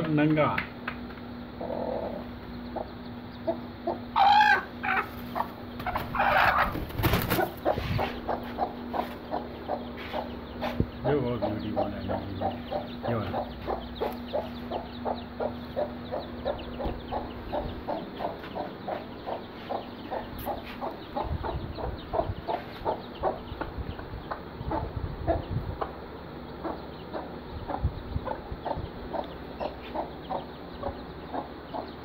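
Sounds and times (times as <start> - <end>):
hen clucking: 1.4 - 32.0.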